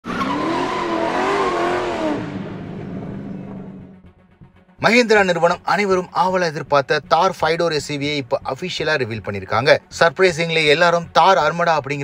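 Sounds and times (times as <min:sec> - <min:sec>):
car tyres squealing: 0:00.0 - 0:03.8.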